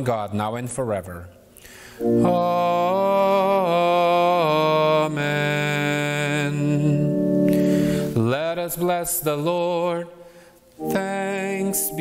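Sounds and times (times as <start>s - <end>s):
held instrumental accompaniment: 2.0s - 4.0s, 6.6s - 8.5s, 10.7s - 12.0s
man chanting sung notes: 2.0s - 10.1s, 10.8s - 12.0s.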